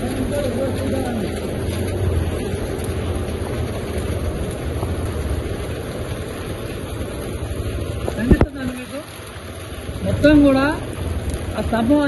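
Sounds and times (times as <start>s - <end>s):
rain: 0.0s - 12.0s
wind buffeting microphone: 0.0s - 12.0s.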